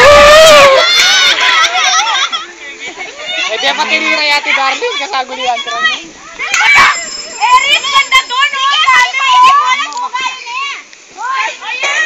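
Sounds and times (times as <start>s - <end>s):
young people shouting and squealing: 0.0s - 12.0s.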